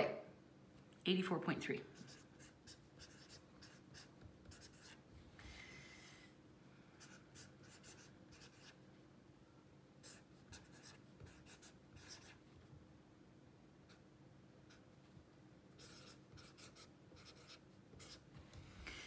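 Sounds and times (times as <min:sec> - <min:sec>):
pen scratching on paper: 0:01.9 - 0:05.0, 0:07.0 - 0:08.8, 0:10.0 - 0:12.4, 0:15.8 - 0:18.2.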